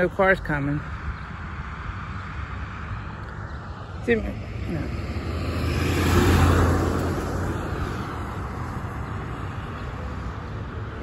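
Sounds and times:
road noise: 0:00.0 - 0:11.0
car driving past: 0:03.0 - 0:10.4.

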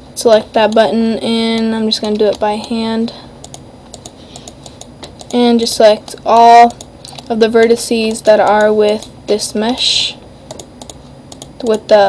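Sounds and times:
mouse and keyboard clicking: 0:03.4 - 0:05.4, 0:06.6 - 0:07.3, 0:10.5 - 0:11.8.

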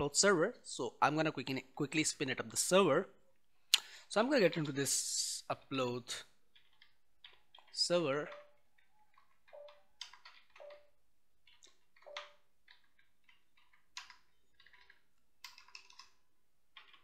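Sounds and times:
keyboard keystrokes: 0:06.6 - 0:10.9, 0:11.5 - 0:16.2.

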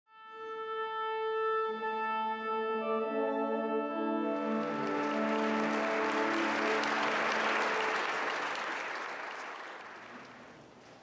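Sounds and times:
orchestra holding chord: 0:02.7 - 0:09.8
audience applause: 0:04.4 - 0:11.0.

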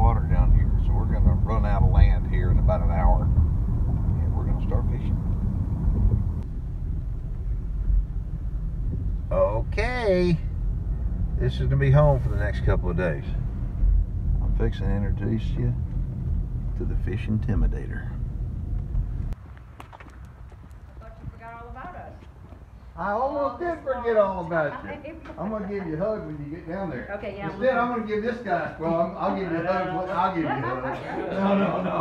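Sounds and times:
car engine and road noise: 0:00.0 - 0:23.3
footstep-like clicks: 0:18.7 - 0:22.7.

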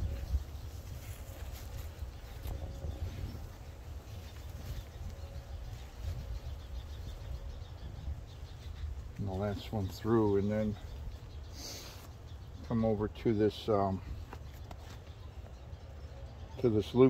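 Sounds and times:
rope rustling: 0:00.0 - 0:06.2.

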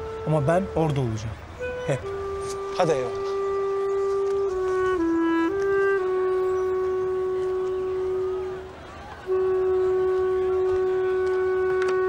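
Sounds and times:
woodwind holding a long note: 0:00.0 - 0:12.0.

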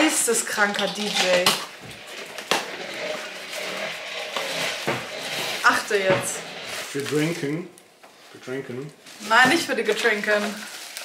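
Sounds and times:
tape and cardboard rustling: 0:00.0 - 0:07.7, 0:08.7 - 0:11.0.

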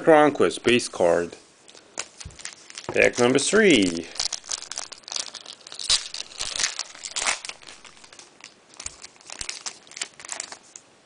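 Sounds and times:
wrapper tearing and crinkling: 0:01.7 - 0:10.8.

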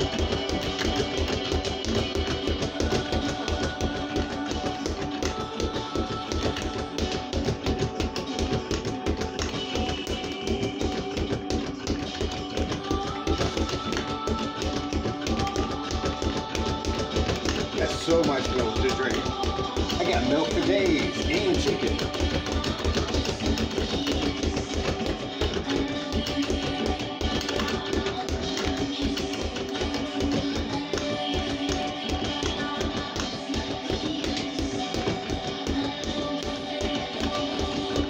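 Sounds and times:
speed bag punches: 0:00.0 - 0:38.0.

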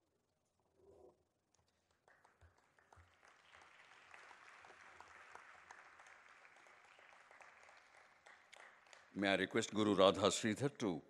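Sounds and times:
faint audience applause: 0:01.9 - 0:10.2.

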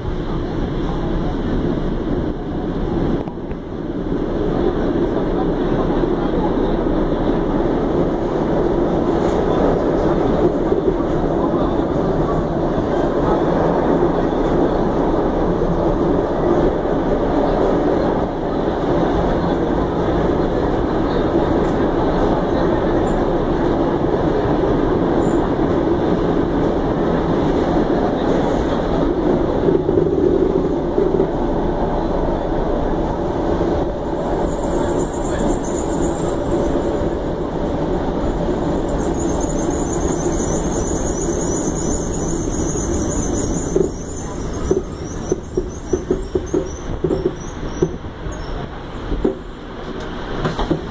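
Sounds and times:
subway train rumbling: 0:00.0 - 0:50.9.

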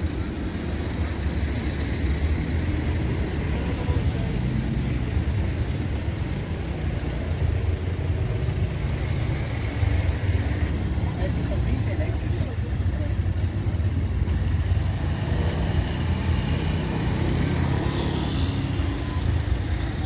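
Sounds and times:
motor scooter running: 0:00.0 - 0:20.0
slow road traffic drone: 0:00.0 - 0:20.0.

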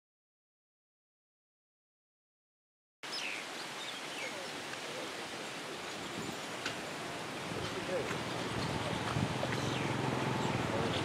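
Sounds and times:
steady background hiss: 0:03.0 - 0:11.0.

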